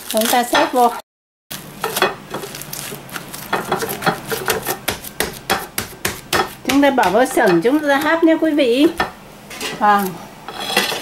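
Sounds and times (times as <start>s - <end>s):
plastic cling wrap crinkling: 0.0s - 5.5s.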